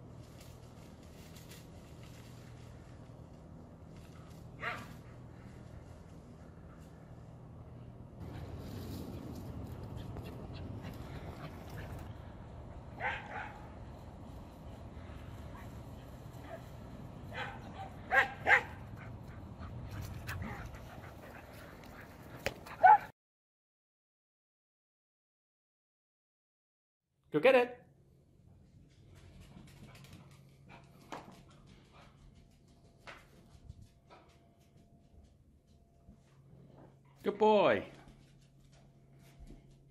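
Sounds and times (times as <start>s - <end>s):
low steady hum: 0.0s - 23.0s, 27.9s - 39.9s
dog barking: 4.6s - 5.0s, 13.0s - 13.7s, 17.3s - 19.0s, 22.8s - 23.1s.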